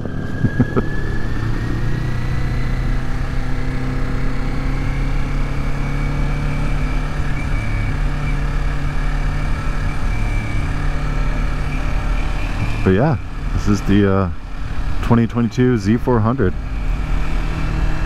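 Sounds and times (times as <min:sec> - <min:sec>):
wind and road noise: 0:00.0 - 0:18.0.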